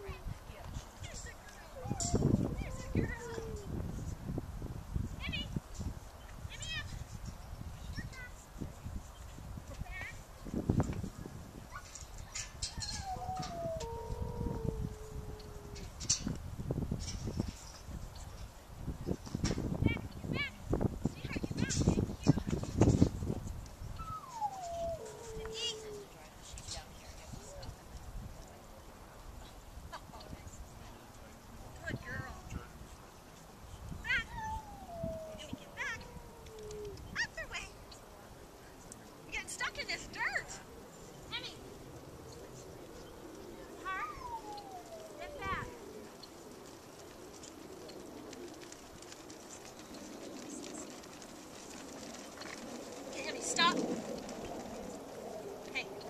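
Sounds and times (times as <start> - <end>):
slowly falling whine: 40.0 - 56.0.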